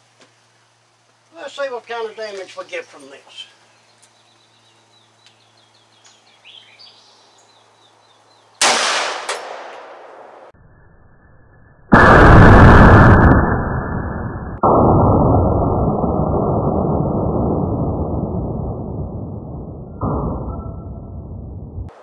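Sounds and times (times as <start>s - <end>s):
pistol shot with echo: 8.6s - 10.5s
slowed-down gunshot rumble: 14.6s - 22.0s.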